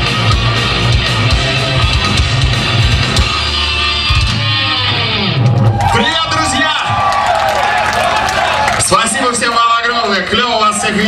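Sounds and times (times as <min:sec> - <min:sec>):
heavy metal band playing live: 0:00.0 - 0:07.4.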